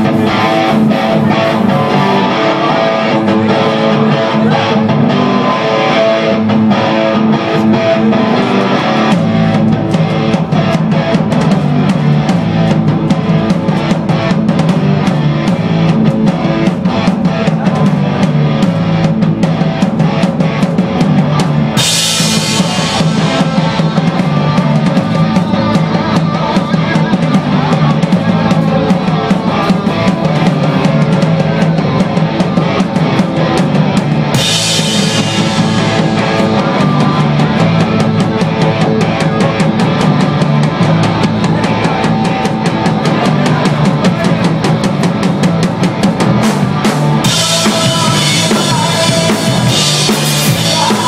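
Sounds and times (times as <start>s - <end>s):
live rock band playing: 0.0s - 51.0s.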